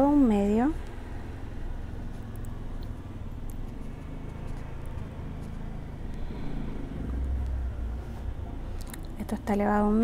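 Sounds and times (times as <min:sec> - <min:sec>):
low background rumble: 0:00.0 - 0:10.0.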